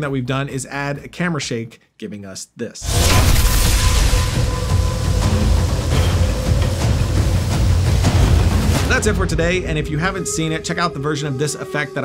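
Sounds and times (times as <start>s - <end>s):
loud low rumble: 2.8s - 11.0s.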